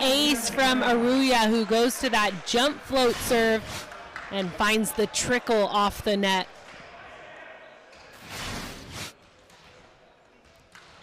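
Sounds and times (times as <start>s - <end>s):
gymnasium room noise: 0.0s - 11.0s.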